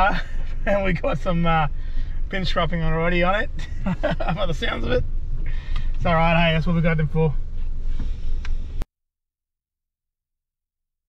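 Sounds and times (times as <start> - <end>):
low rumble inside vehicle cabin: 0.0 - 8.9
small tick: 5.7 - 6.0, 8.4 - 8.6.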